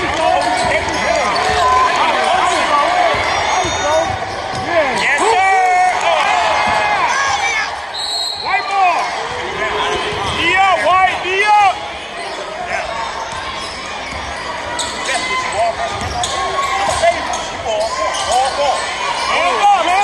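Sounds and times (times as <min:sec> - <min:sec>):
sneakers squeaking: 0:00.0 - 0:05.1, 0:06.6 - 0:10.9, 0:11.9 - 0:20.0
voices shouting: 0:00.0 - 0:20.0.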